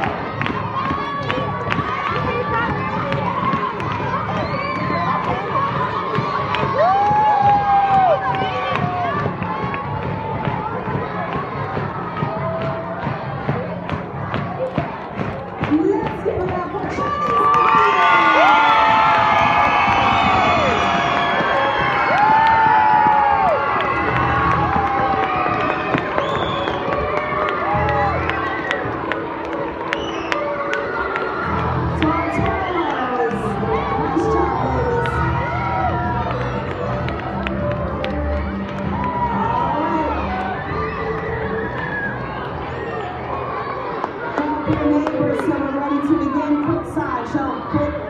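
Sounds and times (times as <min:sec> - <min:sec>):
crowd of children cheering: 0:00.0 - 0:48.0
music playing: 0:00.0 - 0:48.0.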